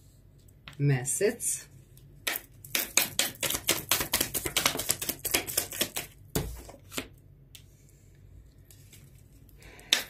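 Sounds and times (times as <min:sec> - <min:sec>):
cards being shuffled: 0:02.9 - 0:07.1.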